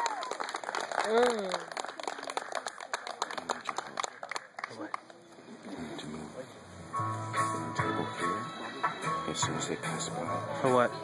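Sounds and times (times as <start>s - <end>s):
people applauding: 0.0s - 5.2s.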